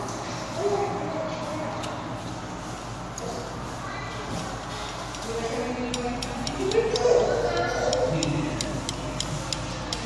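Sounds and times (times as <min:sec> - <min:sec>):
steady ticking: 0:05.8 - 0:10.0.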